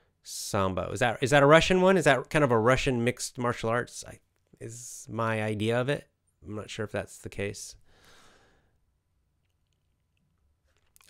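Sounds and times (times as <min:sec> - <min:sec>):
soft breath: 0:07.8 - 0:08.8.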